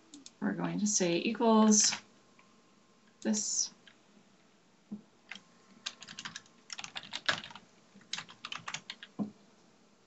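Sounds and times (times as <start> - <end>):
computer keyboard typing: 5.3 - 9.2.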